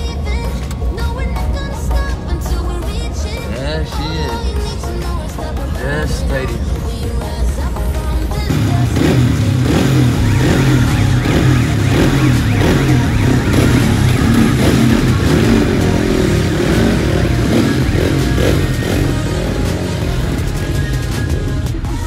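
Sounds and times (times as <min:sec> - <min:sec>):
music playing: 0:00.0 - 0:22.0
motorcycle engines revving: 0:08.3 - 0:22.0.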